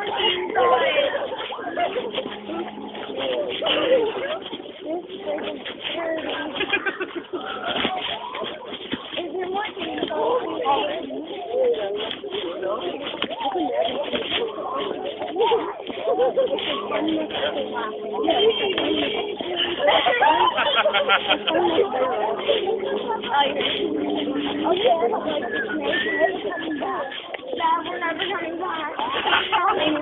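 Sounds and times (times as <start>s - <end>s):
people talking indistinctly: 0.0s - 30.0s.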